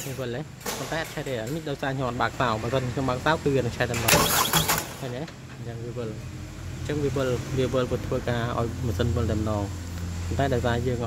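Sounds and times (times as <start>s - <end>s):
man talking: 0.0s - 6.2s, 6.8s - 11.0s.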